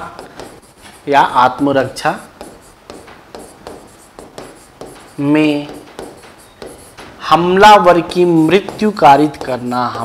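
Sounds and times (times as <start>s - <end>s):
chalk writing on blackboard: 0.0s - 10.0s.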